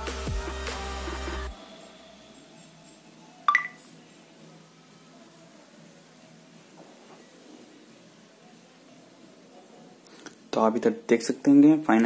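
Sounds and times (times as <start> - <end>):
smartphone two-note unlock beep: 3.5 - 3.8.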